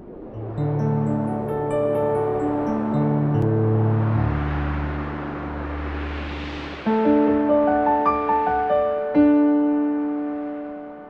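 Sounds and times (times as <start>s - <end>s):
wide wash of hiss: 1.7s - 10.7s
deep low rumble: 2.2s - 8.4s.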